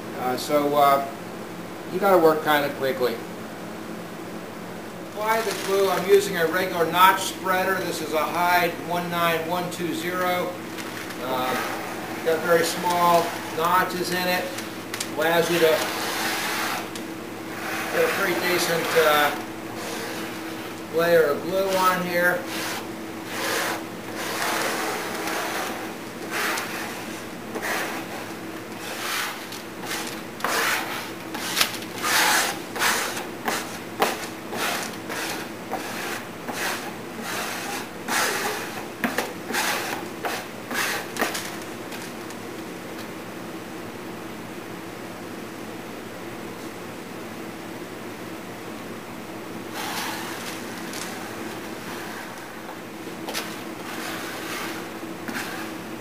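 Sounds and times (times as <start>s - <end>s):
glue spreader scraping plywood: 11.2s - 41.5s, 49.7s - 52.6s, 53.3s - 55.8s.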